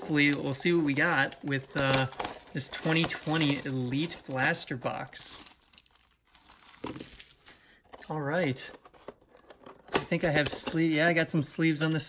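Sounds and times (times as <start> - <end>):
plastic packaging rustling: 0.0 - 11.0.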